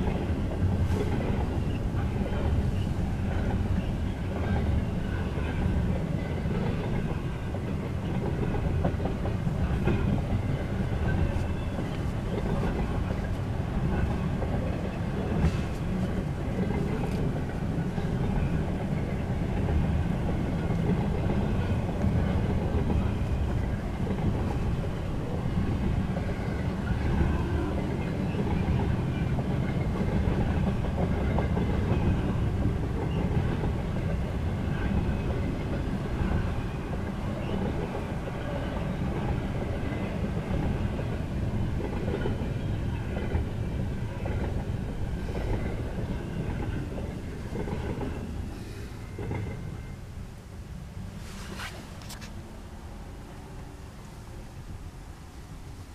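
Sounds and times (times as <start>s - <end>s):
freight train wheels rumbling: 0.0s - 55.9s.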